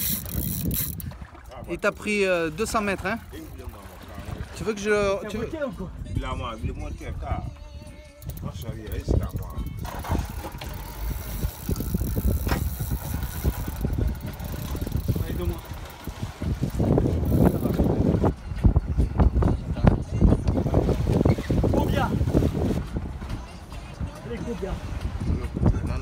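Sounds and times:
wind buffeting microphone: 0.0 - 1.8, 3.1 - 26.0
boat engine running: 0.0 - 5.2, 7.6 - 26.0
water noise: 0.0 - 26.0.

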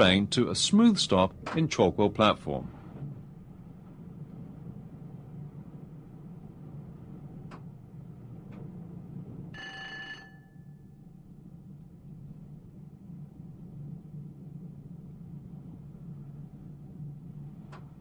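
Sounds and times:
electric train rumbling on rails: 0.0 - 18.0
faint clicks: 7.4 - 7.7, 17.6 - 18.0.

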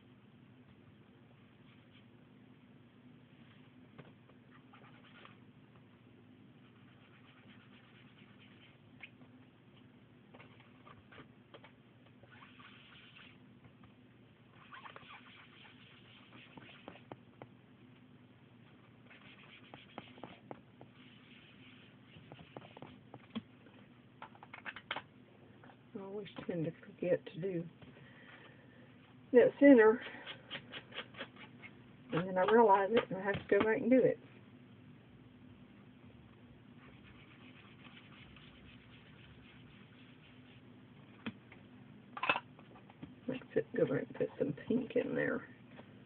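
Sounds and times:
ink applicator rubbing on paper: 6.6 - 8.8, 12.3 - 13.4, 14.6 - 17.2, 19.0 - 23.0, 36.8 - 40.7.

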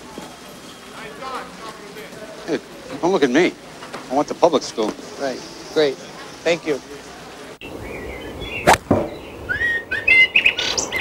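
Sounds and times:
birds chirping: 4.7 - 11.0
sharp knocks: 8.7 - 9.3.

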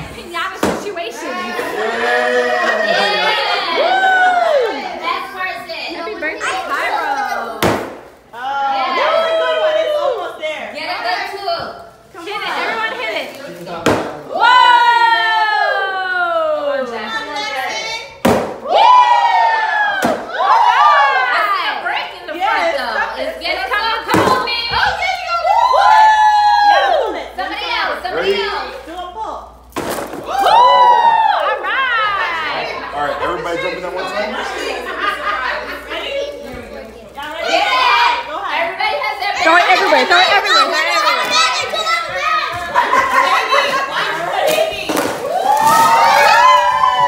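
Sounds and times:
children talking and shouting: 0.0 - 47.0
sharp whack on a pinata: 7.6 - 8.1, 13.8 - 14.2, 18.2 - 18.6, 20.0 - 20.3
children yelling: 39.3 - 43.8.

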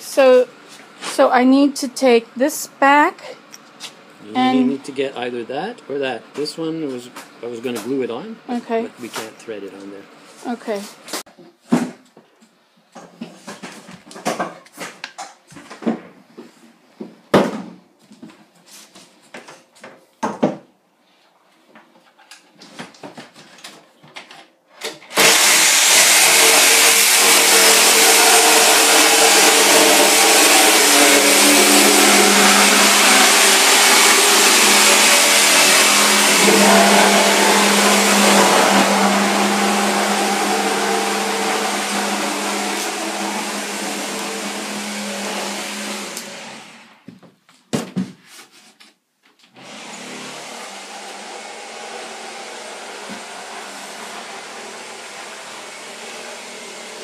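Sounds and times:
power tool motor running: 25.1 - 47.0, 49.6 - 57.0.

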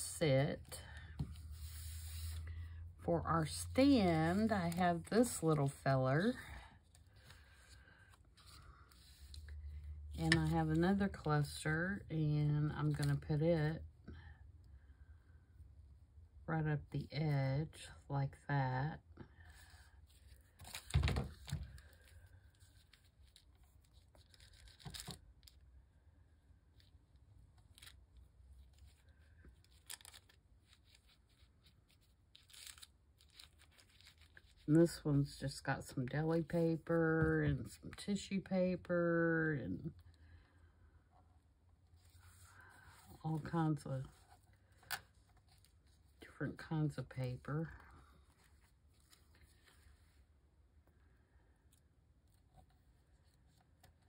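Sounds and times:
paper and playing card handling: 0.8 - 2.6, 3.4 - 11.6, 19.6 - 25.6, 27.6 - 35.3, 41.9 - 50.2
tissue paper rustling: 1.3 - 2.5.

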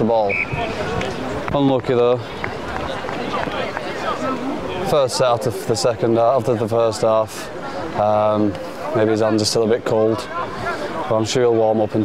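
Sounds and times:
distant shouts and chatter: 0.0 - 12.0
outdoor background noise: 0.0 - 12.0.

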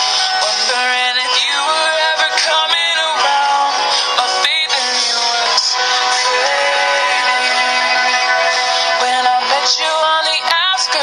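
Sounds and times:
pop-country song: 0.0 - 11.0.

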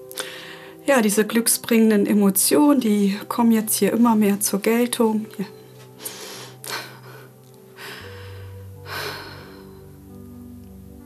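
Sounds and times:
soft background music: 0.0 - 11.0
woman breathing: 0.1 - 0.8, 6.0 - 10.1.

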